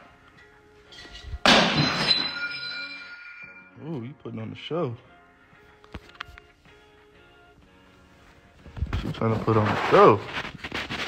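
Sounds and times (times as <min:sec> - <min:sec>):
loud crash with ringing: 0:01.4 - 0:03.5.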